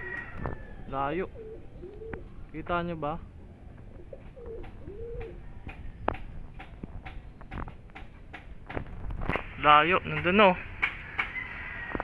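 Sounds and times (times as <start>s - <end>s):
pigeons cooing: 0.0s - 2.4s, 3.8s - 5.9s.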